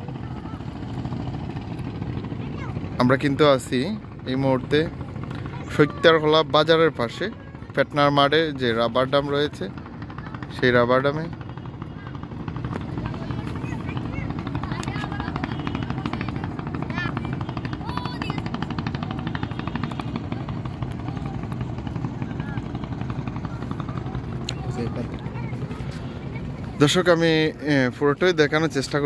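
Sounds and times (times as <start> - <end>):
low pulsing drone: 0.0 - 29.0
faint voices: 8.8 - 28.7.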